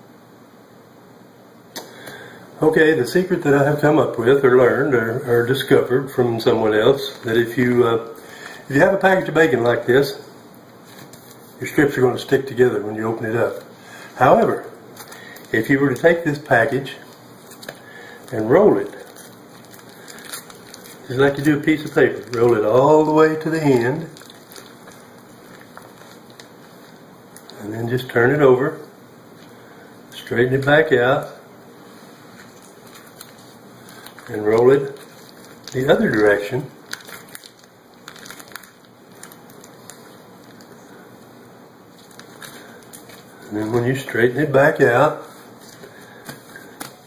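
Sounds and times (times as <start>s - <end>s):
plastic packaging crinkling: 3.7s - 28.4s, 31.8s - 47.0s.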